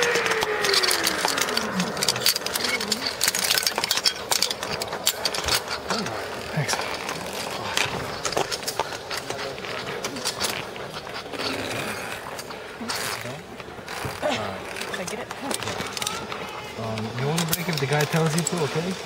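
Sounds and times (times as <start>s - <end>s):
zip-line trolley whining on cable: 0.0s - 6.4s
metallic clicks and rattles: 0.0s - 11.6s.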